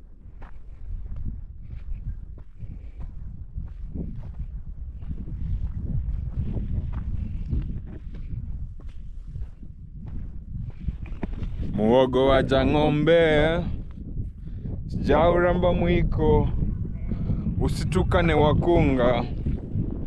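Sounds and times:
footsteps on dirt path: 0.0 - 15.2
low rumble: 0.0 - 20.0.

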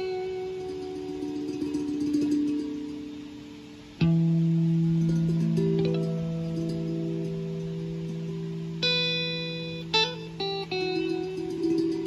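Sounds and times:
guitar notes ringing: 0.0 - 12.0.

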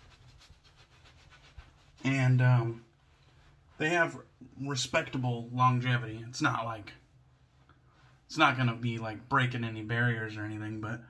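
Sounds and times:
towel rubbing on beard: 0.0 - 8.9.

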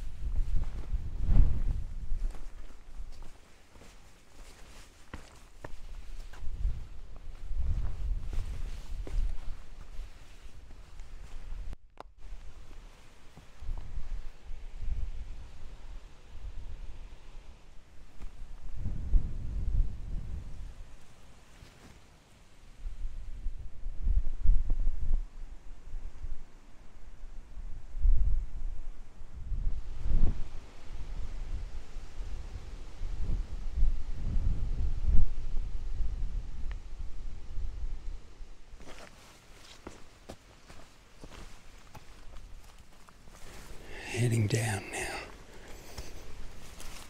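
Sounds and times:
wind buffeting microphone: 0.0 - 3.3, 5.8 - 11.8, 18.2 - 21.0, 27.4 - 38.4.

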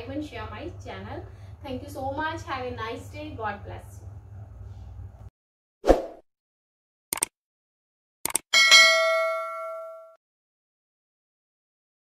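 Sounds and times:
quick double click: 7.1 - 7.3
notification bell ding: 8.6 - 10.2.

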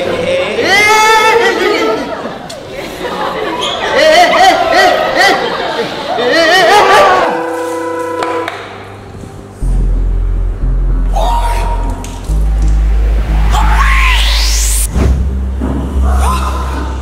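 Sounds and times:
background chatter: 1.5 - 4.0
held musical chord: 7.3 - 16.0
deep heavy bass: 8.8 - 17.0
voices with wavering pitch: 9.6 - 15.0.

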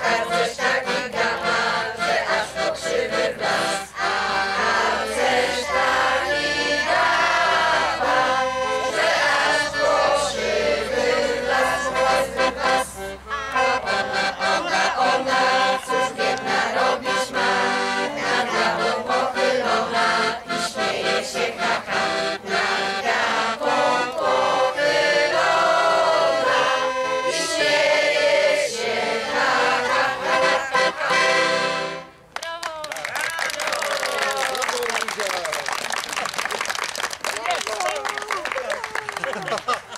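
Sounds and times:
children and adults singing: 0.0 - 32.0
piano accordion chords: 0.0 - 32.2.

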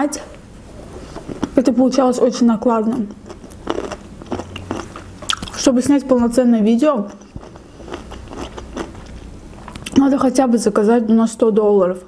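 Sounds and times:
mouth chewing clicks and smacks: 3.2 - 5.7, 7.1 - 10.0.

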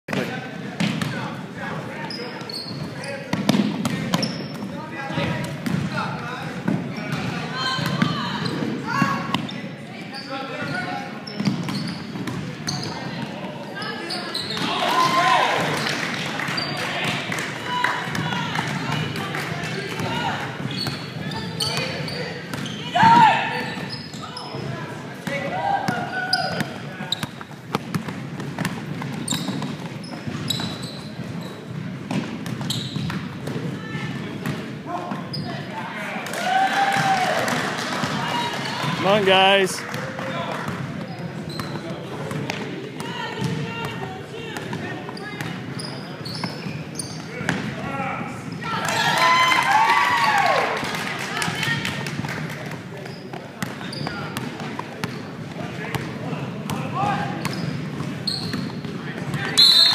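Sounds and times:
ball bouncing on hardwood court: 0.1 - 1.2, 3.3 - 6.0, 6.6 - 9.6, 25.2 - 30.9, 31.7 - 35.2, 39.9 - 45.6, 47.4 - 47.7
sneakers squeaking: 0.1 - 35.8, 40.7 - 48.6, 53.0 - 59.9.

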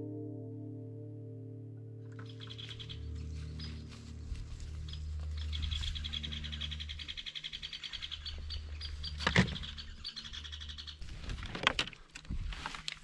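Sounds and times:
small bird trilling: 2.2 - 3.8, 4.9 - 11.1.

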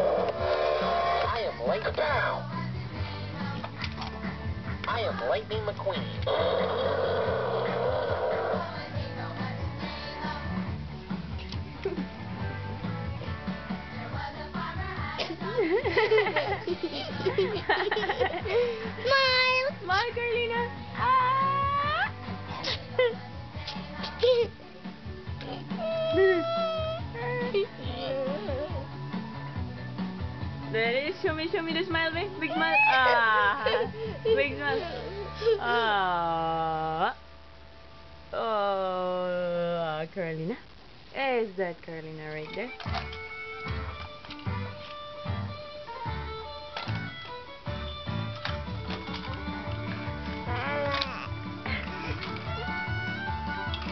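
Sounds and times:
background music with held notes: 0.0 - 36.5, 42.4 - 53.9
baby squealing: 25.7 - 28.5, 32.5 - 33.2, 50.4 - 51.4.

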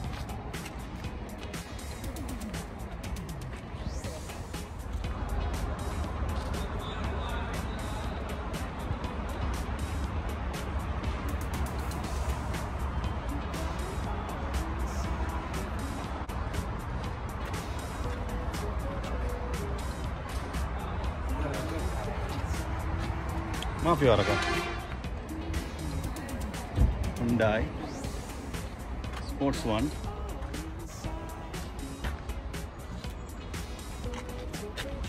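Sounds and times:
music playing: 0.0 - 35.0.

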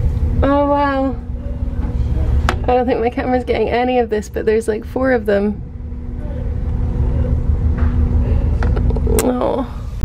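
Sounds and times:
ship engines droning: 0.0 - 10.0.

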